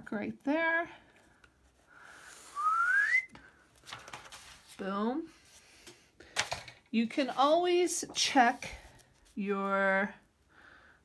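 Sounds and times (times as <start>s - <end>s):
person whistling rising note: 2.4s - 3.4s.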